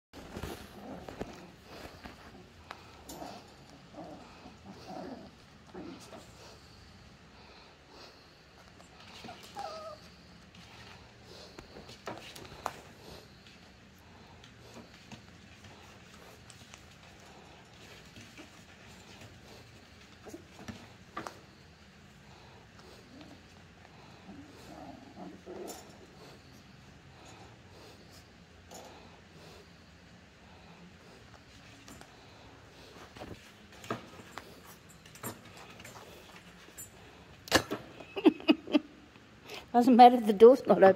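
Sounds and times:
puppies making faint vocal sounds: 0.2 - 37.4
puppies whining: 8.7 - 11.0.

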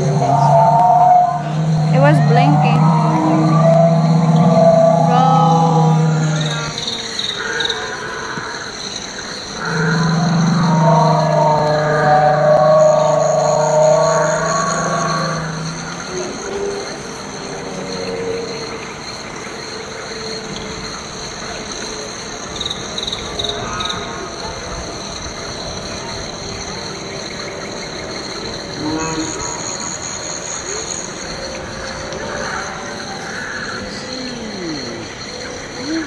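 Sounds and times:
long low dinosaur calls from loudspeaker: 0.0 - 6.8, 9.6 - 16.7, 28.8 - 30.0.

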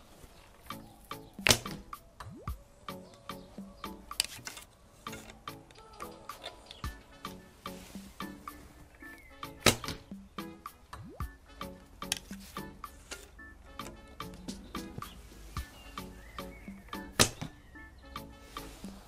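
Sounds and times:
background music with steady beat: 0.6 - 19.0
bow string snapping on release: 1.4 - 2.0, 9.6 - 10.2, 12.0 - 12.4, 16.9 - 17.6.

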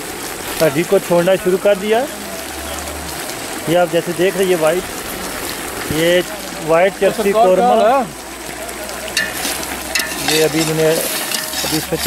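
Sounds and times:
meat sizzling in a metal pot: 0.0 - 12.0
metal spoon scraping and stirring: 9.2 - 12.0.

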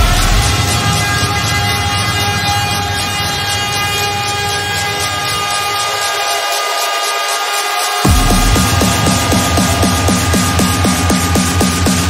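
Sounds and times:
hardcore electronic music: 0.0 - 12.0
horn-like synth chord: 0.0 - 12.0.

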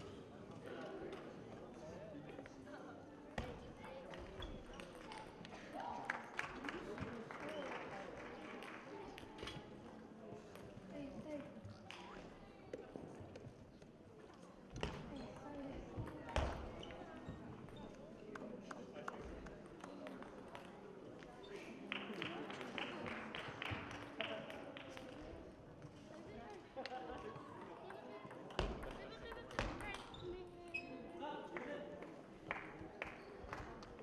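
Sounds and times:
voices chattering in echoing hall: 0.0 - 34.0.

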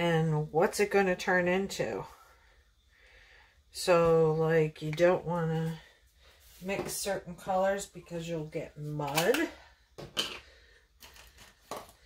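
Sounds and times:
plastic cups clicking and knocking: 9.1 - 12.0.

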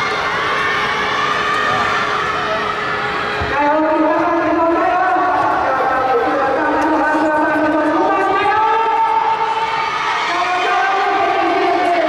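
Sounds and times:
spectators shouting and cheering: 0.0 - 12.0.

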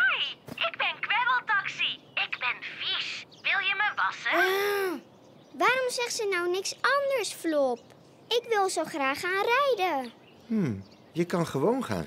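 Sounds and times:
high-pitched cartoon voice: 0.0 - 5.0.

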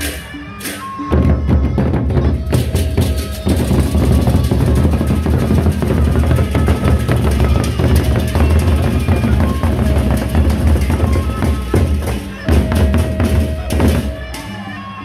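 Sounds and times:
hand cymbals clashing: 0.0 - 1.2, 2.4 - 14.8
barrel drums beaten fast: 1.2 - 14.2.

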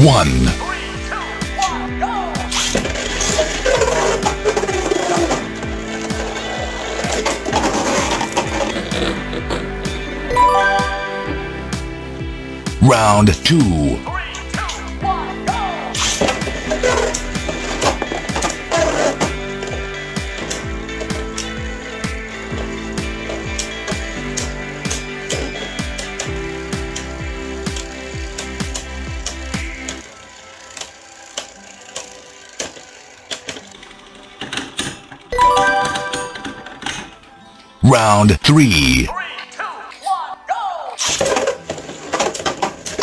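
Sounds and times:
background music: 0.0 - 43.0.

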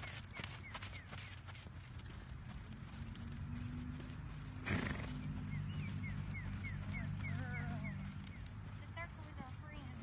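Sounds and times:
horse hoofbeats on sand: 0.0 - 10.0
horse snorting: 4.5 - 5.3.

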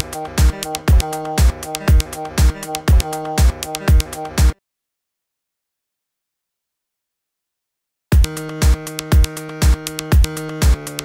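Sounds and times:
drum machine kick: 0.0 - 4.6, 8.2 - 11.0
held synthesizer chord: 0.0 - 4.6.

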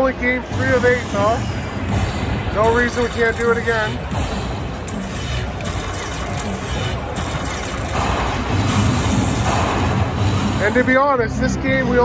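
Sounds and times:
babble of many voices: 0.0 - 12.0
music: 0.0 - 12.0
slot machine sounds: 1.9 - 9.6.

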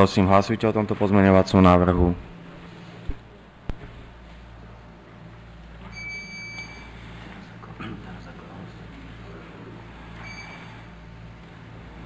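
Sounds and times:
electronic beep: 5.9 - 6.9, 10.2 - 10.8.

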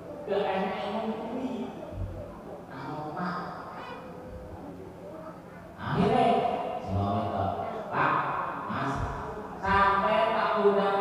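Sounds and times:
man speaking into a microphone: 5.8 - 9.3.

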